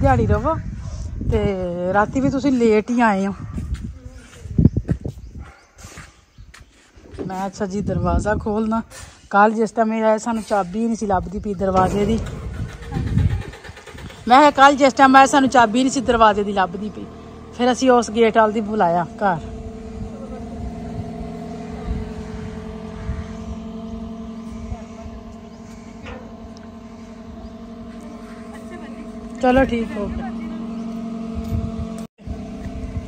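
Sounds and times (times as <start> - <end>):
low outdoor background: 0.0 - 33.0
car engine idling: 11.3 - 33.0.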